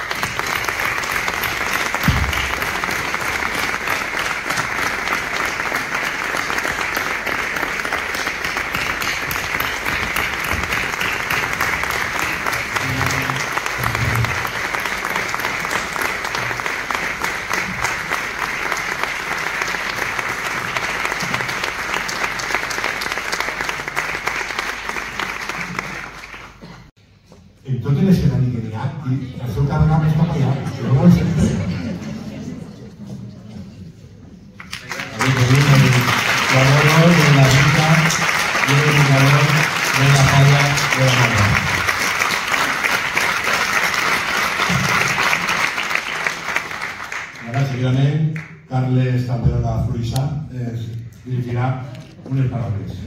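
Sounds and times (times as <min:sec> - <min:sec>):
audience applauding: 0:00.0 - 0:26.9, 0:34.6 - 0:48.7.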